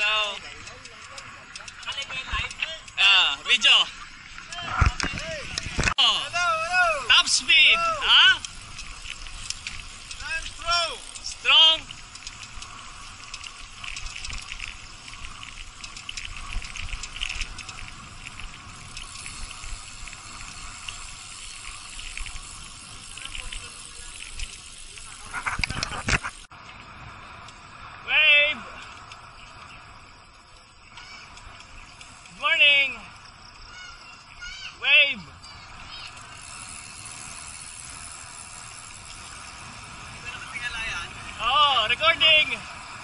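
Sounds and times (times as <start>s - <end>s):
bicycle tyre noise on concrete: 0.0s - 43.0s
wind rushing over microphone: 4.6s - 7.2s.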